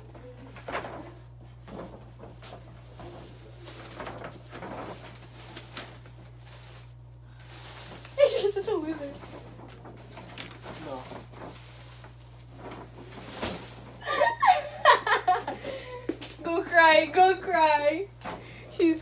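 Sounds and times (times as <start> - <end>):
tissue paper rustling: 0.0 - 15.5.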